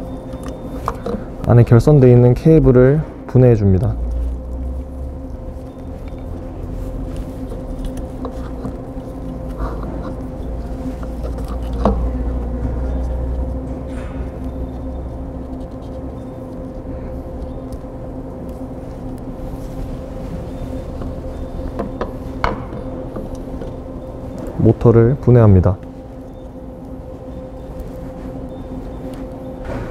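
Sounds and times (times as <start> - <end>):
low machine hum: 0.0 - 29.9.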